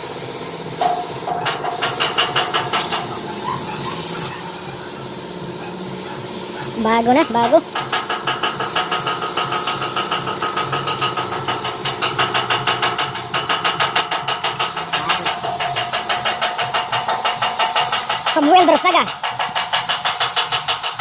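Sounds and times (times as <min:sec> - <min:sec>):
paint spray gun hissing: 0:00.0 - 0:21.0
rapid mechanical pulsing: 0:00.0 - 0:21.0.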